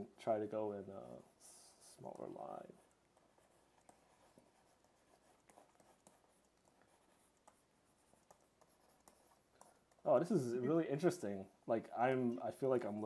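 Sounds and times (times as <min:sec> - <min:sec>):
stylus scratching on pen tablet: 0:00.2 - 0:11.6.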